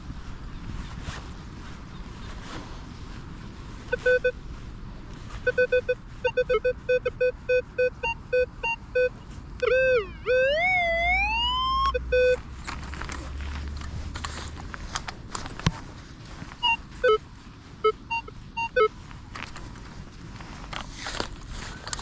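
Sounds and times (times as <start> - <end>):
metal detector beeps: 3.9 - 4.4, 5.4 - 12.4, 16.6 - 17.2, 17.8 - 18.9
metal detector continuous tone: 3.9 - 4.5, 5.3 - 12.5, 16.5 - 19.0.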